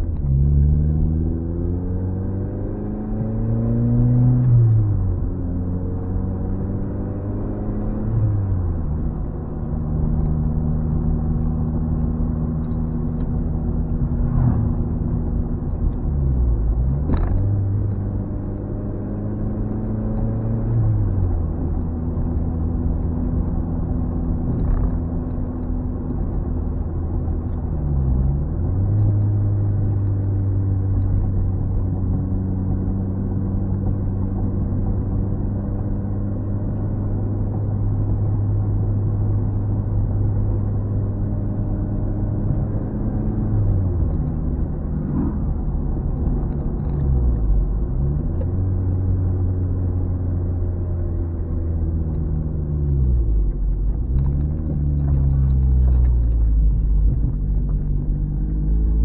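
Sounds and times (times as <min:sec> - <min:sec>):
car engine running: 0:00.0 - 0:59.0.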